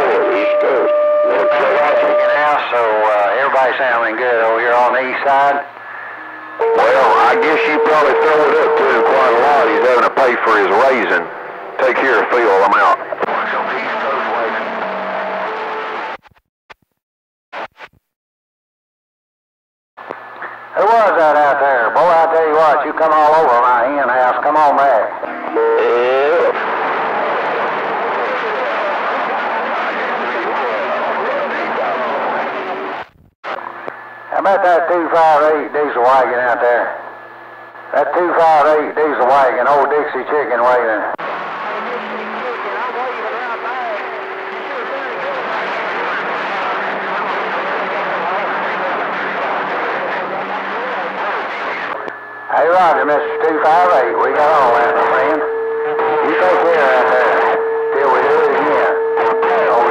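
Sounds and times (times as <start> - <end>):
clear radio voice: 0.0 - 14.6, 20.8 - 26.6, 41.8 - 59.9
faint garbled radio voices: 0.0 - 15.3, 20.0 - 59.9
radio static: 0.0 - 16.4, 20.0 - 59.9
steady low whistle: 5.8 - 9.8.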